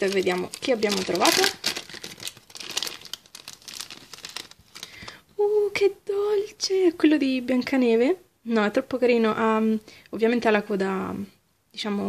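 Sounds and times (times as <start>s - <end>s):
plastic foil packet crinkling: 0.0s - 5.2s.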